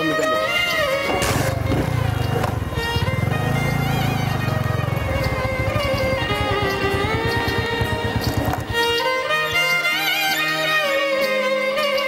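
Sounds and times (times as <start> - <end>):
background music with string tones: 0.0 - 12.0
motorcycle engine running: 0.5 - 9.9.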